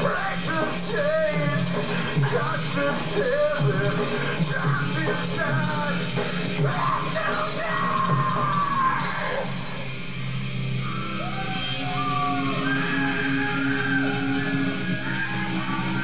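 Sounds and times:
heavy rock band playing: 0.0 - 16.0.

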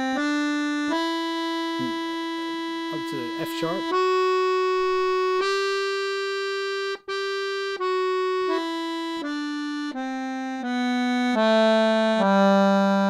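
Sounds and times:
accordion playing a scale: 0.0 - 13.0.

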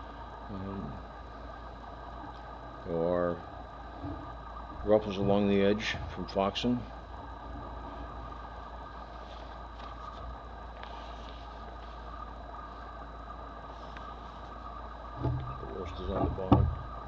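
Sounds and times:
low background hum: 0.0 - 17.0
paper booklet rustling: 9.2 - 12.0.

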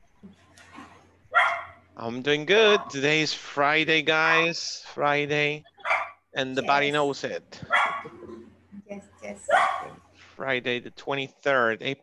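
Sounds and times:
dog barking: 1.4 - 1.8, 2.6 - 3.0, 5.8 - 6.2, 7.6 - 8.2, 9.5 - 10.0.

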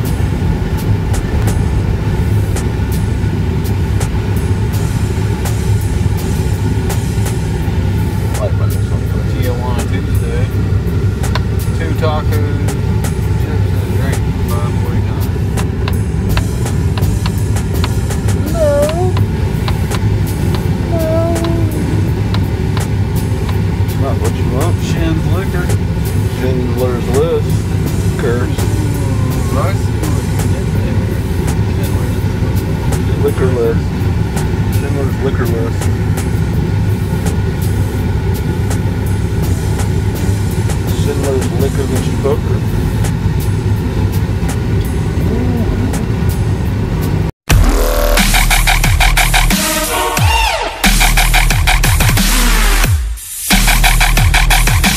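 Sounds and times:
van engine low rumble: 0.0 - 54.9.

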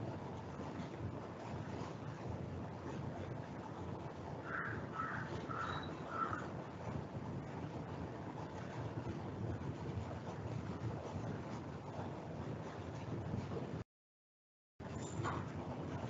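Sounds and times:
steady background noise: 0.0 - 13.8.

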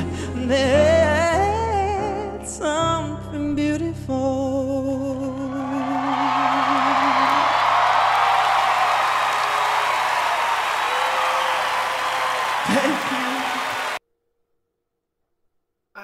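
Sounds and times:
audience cheering and applauding: 5.3 - 14.0.

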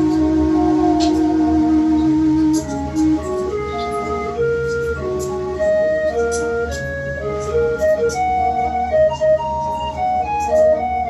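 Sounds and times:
electronic keyboard organ melody: 0.0 - 11.0.

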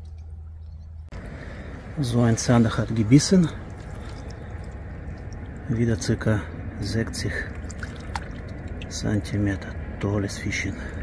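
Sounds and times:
river water lapping at bank: 0.0 - 11.0.

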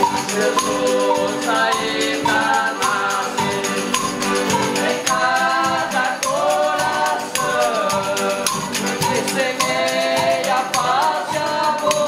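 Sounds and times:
acoustic guitar: 0.0 - 12.0
button accordion: 0.0 - 12.0
drum beats: 0.0 - 12.0
group singing in chorus: 0.0 - 12.0.

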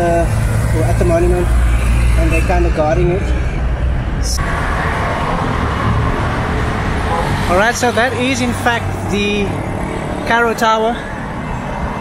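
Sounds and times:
road traffic rumble and hiss: 0.0 - 12.0.

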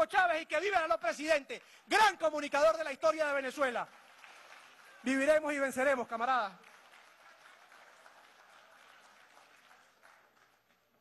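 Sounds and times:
faint applause: 6.4 - 11.0.

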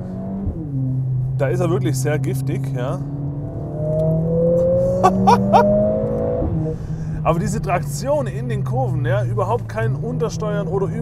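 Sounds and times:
car engine accelerating: 0.0 - 8.6.

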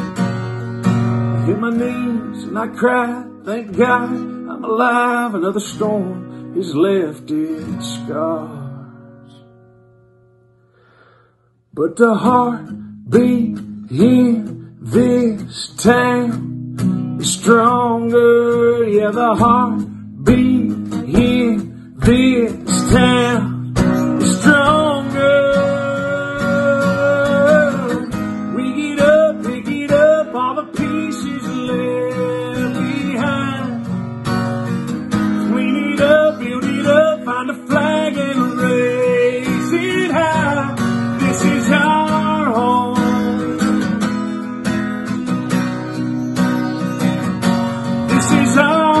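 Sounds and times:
strummed acoustic guitar: 0.0 - 49.0
man singing: 1.3 - 9.1, 11.7 - 16.6, 17.2 - 34.1, 35.0 - 44.6, 47.9 - 49.0.

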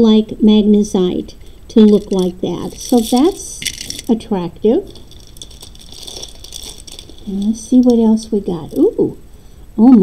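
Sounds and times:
plastic beads clicking and rattling: 1.7 - 4.2, 4.8 - 9.2.

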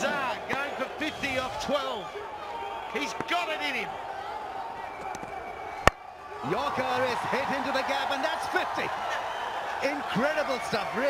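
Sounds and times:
stadium background noise: 0.0 - 11.0.

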